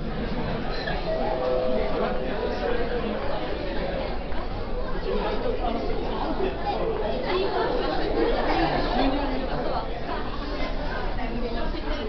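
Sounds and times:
indistinct chatter of people: 0:00.0 - 0:12.0.

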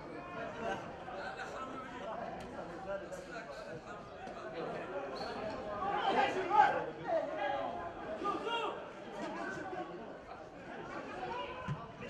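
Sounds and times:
faint stadium background: 0:00.0 - 0:12.0.

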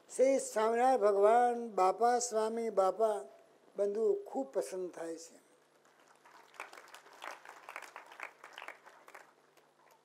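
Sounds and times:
audience clapping: 0:05.8 - 0:10.0.

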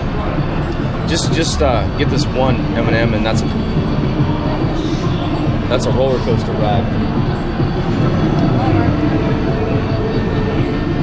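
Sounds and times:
arcade low rumble: 0:00.0 - 0:11.0
indistinct background voices: 0:00.0 - 0:11.0.

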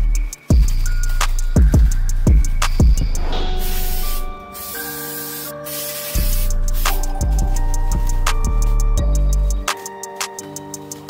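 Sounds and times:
aerosol can hissing: 0:03.2 - 0:09.9.

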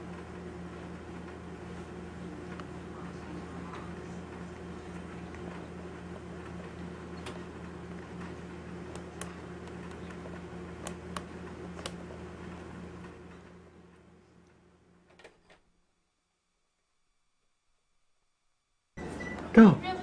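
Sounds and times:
steady low hum: 0:00.0 - 0:20.0.

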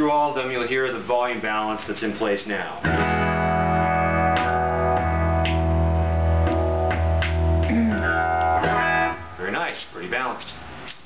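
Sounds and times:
electric guitar chords strummed: 0:02.8 - 0:09.4.

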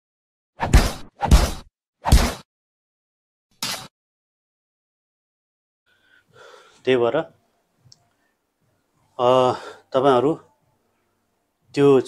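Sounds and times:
man speaking: 0:06.8 - 0:07.4, 0:09.2 - 0:10.5, 0:11.7 - 0:12.0.

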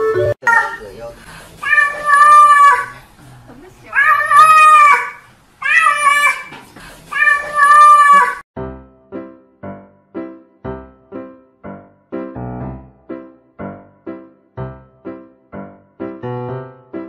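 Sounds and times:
cat meowing: 0:00.4 - 0:01.0, 0:01.6 - 0:02.9, 0:03.9 - 0:06.5, 0:07.1 - 0:08.4.

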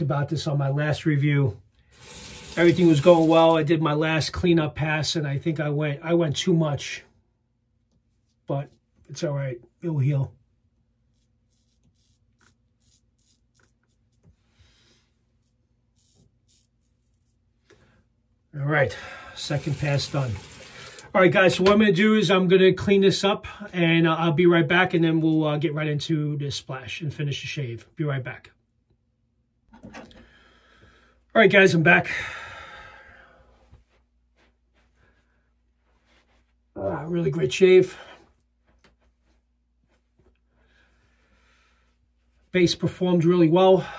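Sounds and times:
scratchy razor strokes on stubble: 0:11.0 - 0:14.4, 0:15.3 - 0:17.5.

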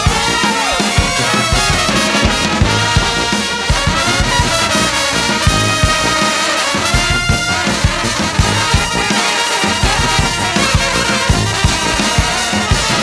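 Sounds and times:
brass band playing: 0:00.0 - 0:13.0.

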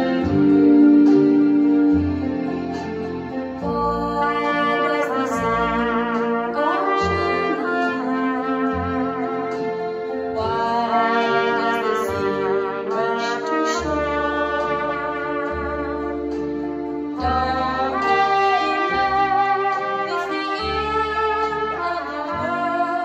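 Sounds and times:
backing track: 0:00.0 - 0:23.0
solo trumpet ballad melody: 0:00.0 - 0:23.0.

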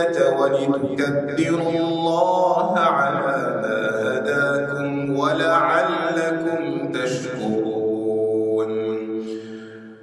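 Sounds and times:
man reciting melodically: 0:00.0 - 0:09.8.

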